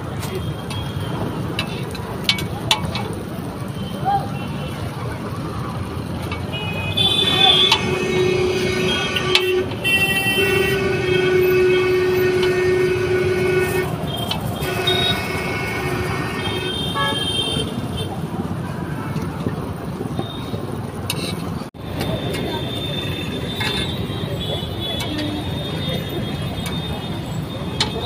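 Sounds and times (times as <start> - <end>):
vehicle horns honking: 0.0 - 1.8, 6.4 - 19.4, 21.2 - 28.0
street traffic noise: 0.0 - 28.0.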